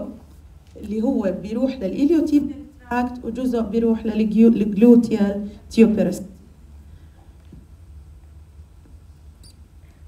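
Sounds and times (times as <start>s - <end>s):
low room and microphone hum: 0.0s - 10.0s
faint high squeaky click: 9.4s - 9.6s.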